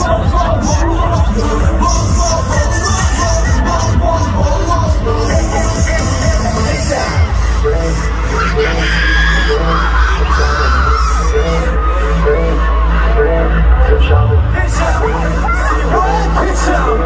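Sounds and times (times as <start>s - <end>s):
dance music over sound system: 0.0s - 17.0s.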